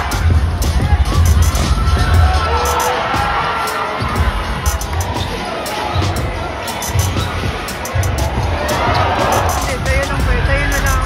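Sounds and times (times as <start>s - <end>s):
crowd noise: 0.0s - 11.0s
music playing: 0.0s - 11.0s.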